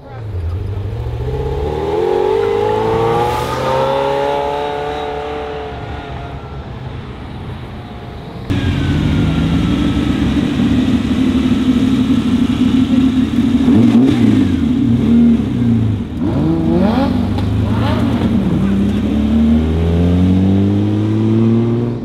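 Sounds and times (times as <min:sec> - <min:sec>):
distant car: 0:00.0 - 0:22.0
sports car engine revving: 0:00.2 - 0:06.6, 0:08.5 - 0:22.0.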